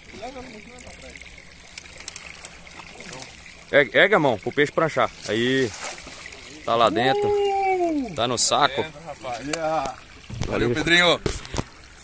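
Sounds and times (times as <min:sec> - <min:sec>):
fish splashing: 0:00.0 - 0:10.6
water lapping at boat: 0:00.0 - 0:12.0.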